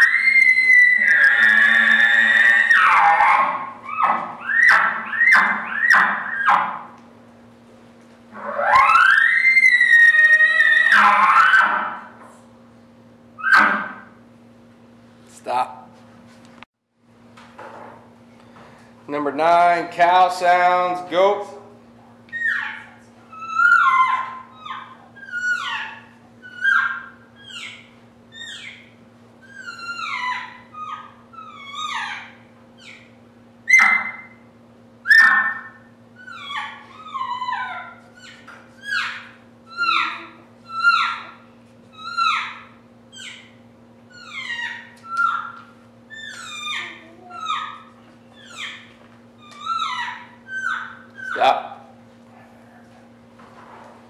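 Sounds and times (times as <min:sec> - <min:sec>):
elk call mews: 0:00.0 - 0:06.9, 0:08.3 - 0:12.2, 0:13.4 - 0:14.2
steady low hum: 0:00.0 - 0:54.0.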